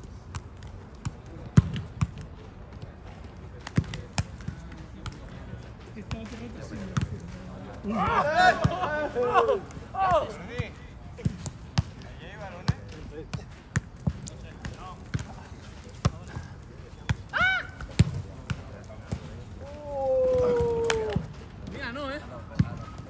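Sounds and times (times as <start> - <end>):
players shouting: 7.8 - 10.8, 17.2 - 18.0, 19.6 - 21.4.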